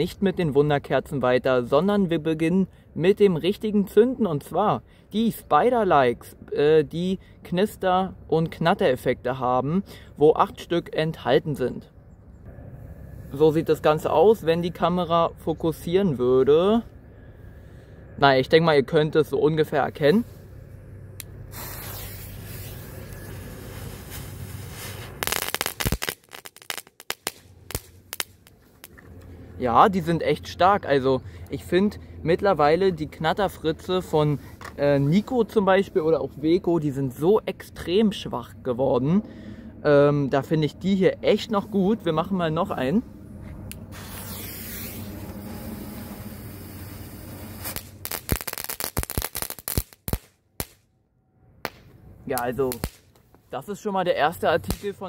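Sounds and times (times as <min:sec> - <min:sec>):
firework fountain hissing: 0:21.5 - 0:28.5, 0:43.9 - 0:50.0
firework crackling pops: 0:21.5 - 0:29.0, 0:43.9 - 0:45.5, 0:46.4 - 0:50.8, 0:51.6 - 0:53.2, 0:54.6 - 0:55.0.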